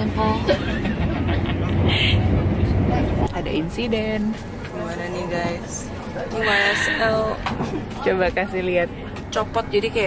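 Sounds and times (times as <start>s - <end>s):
train cabin rumble: 0.0s - 10.0s.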